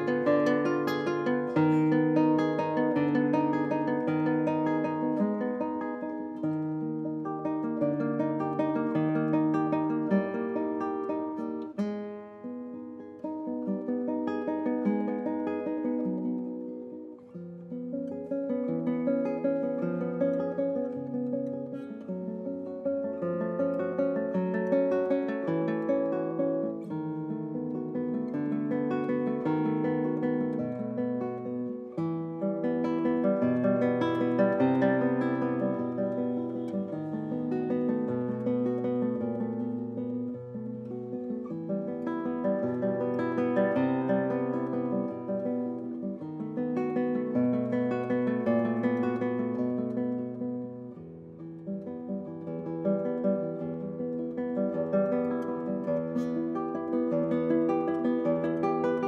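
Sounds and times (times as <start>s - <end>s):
fingerstyle classical guitar: 0.0s - 59.0s.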